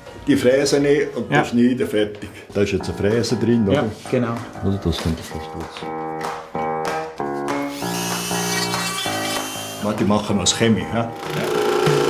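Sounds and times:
rotary tool whining: 7.7s - 9.8s.

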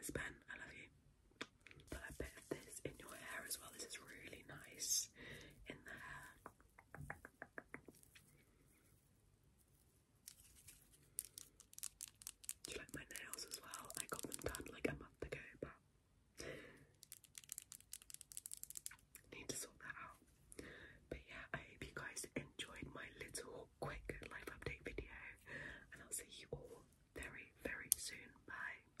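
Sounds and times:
soft whispering: 0.0s - 1.0s, 1.8s - 9.1s, 12.4s - 15.8s, 18.8s - 29.0s
small clicks and taps: 11.2s - 14.8s, 17.0s - 19.3s.

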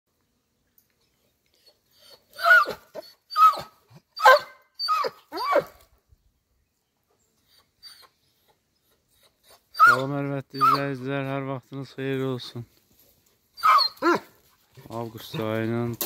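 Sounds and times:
dog whining with high yelps: 1.6s - 5.8s, 7.4s - 10.9s, 13.6s - 14.3s.

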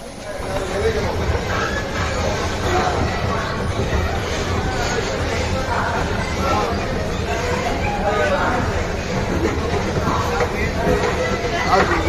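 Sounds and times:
people's voices: 0.0s - 12.0s
train rumble: 0.0s - 12.0s.

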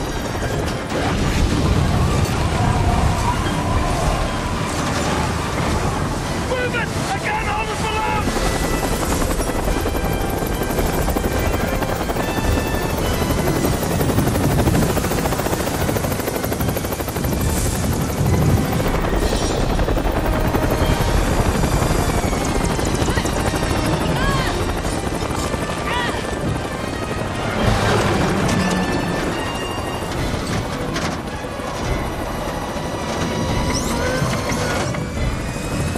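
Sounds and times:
helicopter rotor and engine: 0.0s - 35.9s
voices: 2.3s - 8.4s, 22.9s - 27.3s.

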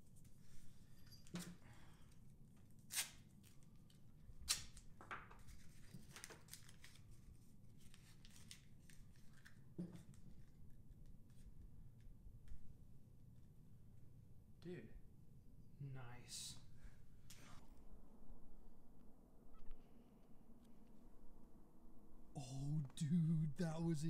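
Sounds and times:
adhesive tape pulled and torn: 2.8s - 3.6s, 4.4s - 4.8s
sharp tape rips: 2.9s - 3.5s, 4.4s - 4.9s.

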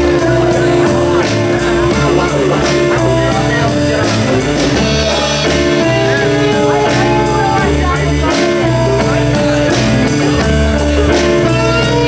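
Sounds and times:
cymbals keeping a beat: 0.0s - 12.0s
rock band playing: 0.0s - 12.0s.

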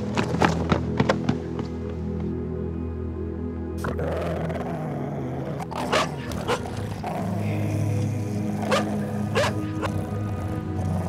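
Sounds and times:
background music: 0.0s - 11.0s
dog barking aggressively: 5.8s - 6.6s, 8.7s - 9.9s.

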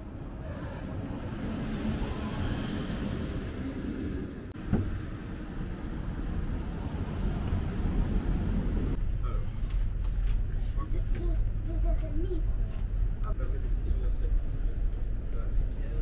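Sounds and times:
electric train rumbling: 0.0s - 16.0s
outdoor air noise: 0.0s - 16.0s.

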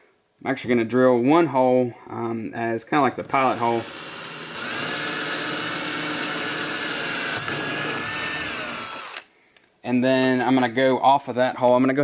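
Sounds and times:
cordless drill boring into plastic: 3.2s - 9.3s.

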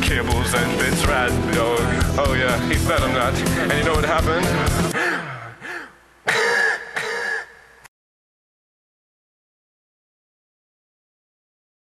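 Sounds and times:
man clearing his throat: 4.8s - 7.8s.

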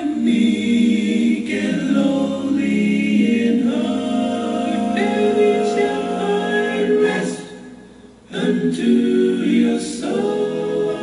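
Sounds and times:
group singing a slow hymn: 0.0s - 11.0s.

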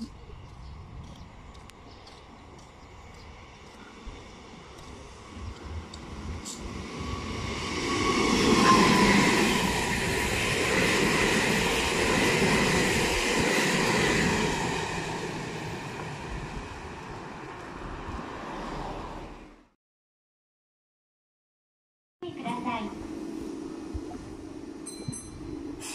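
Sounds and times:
high train whine: 0.0s - 19.6s, 22.2s - 25.9s
electric train passing: 0.0s - 19.7s.

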